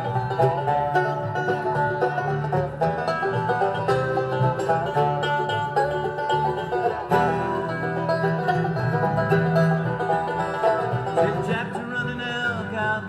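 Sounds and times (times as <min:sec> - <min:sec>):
bluegrass band instrumental: 0:00.0 - 0:13.0.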